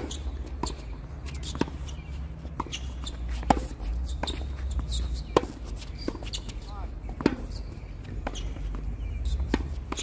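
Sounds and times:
racket hitting tennis ball: 0.0s - 10.0s
shoe squeak: 0.0s - 10.0s
tennis ball bouncing: 0.0s - 10.0s.

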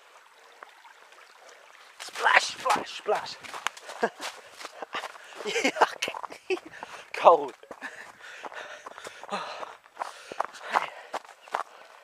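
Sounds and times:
footsteps on stony track: 2.0s - 12.0s.

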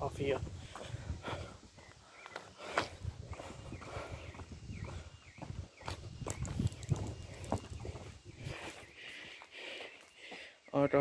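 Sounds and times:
footsteps: 0.2s - 10.5s.

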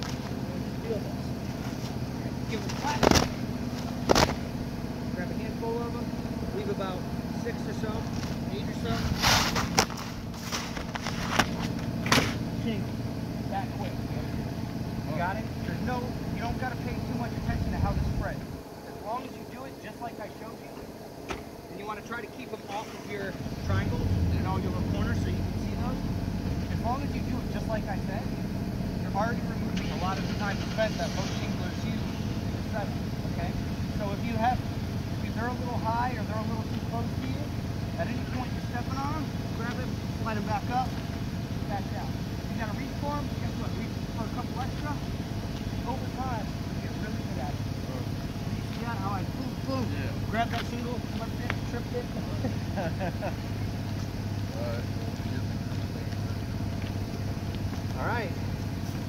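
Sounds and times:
air compressor running: 0.0s - 59.0s.

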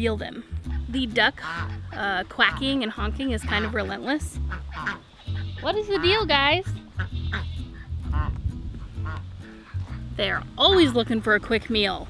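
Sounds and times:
ducks quacking: 0.6s - 12.0s.

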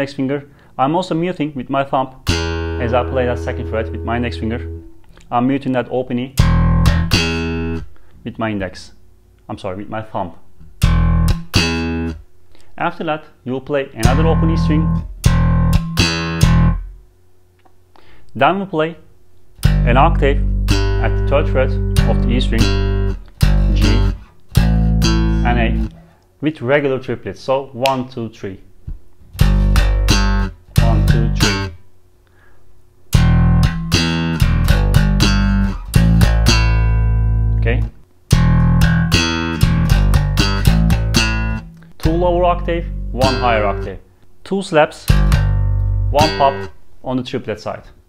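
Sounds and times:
slap bass notes: 2.2s - 5.5s, 6.4s - 7.9s, 10.6s - 12.2s, 14.0s - 17.1s, 19.6s - 26.1s, 28.9s - 31.8s, 33.1s - 44.0s, 45.0s - 46.8s.

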